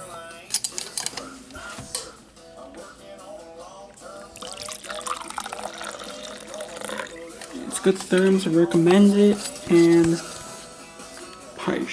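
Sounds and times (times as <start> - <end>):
liquid pouring into metal cup: 4.3 - 8.4.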